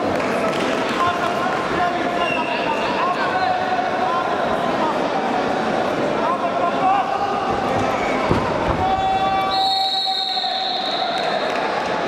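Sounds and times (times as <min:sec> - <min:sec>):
crowd noise and shouting: 0:00.0 - 0:12.0
referee whistle: 0:09.0 - 0:11.4.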